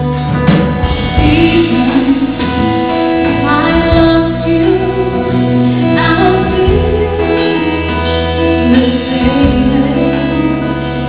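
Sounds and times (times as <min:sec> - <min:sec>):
guitar: 0:00.0 - 0:11.0
live band playing slow ballad: 0:00.0 - 0:11.0
woman singing: 0:01.0 - 0:11.0.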